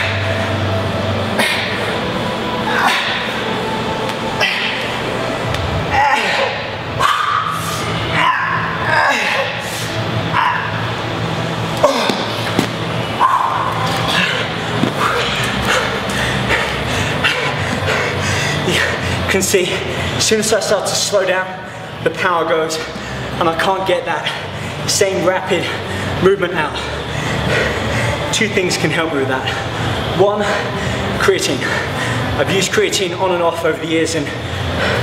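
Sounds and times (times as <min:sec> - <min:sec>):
steady low hum: 0:00.0 - 0:35.0
man grunting and exhaling: 0:01.3 - 0:02.0, 0:02.6 - 0:03.4, 0:05.9 - 0:10.8, 0:11.8 - 0:12.6.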